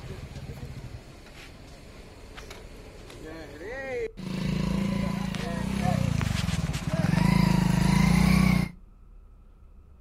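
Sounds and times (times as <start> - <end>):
people talking: 0.0 - 1.0, 3.1 - 7.7
vehicle engine running: 4.2 - 8.8.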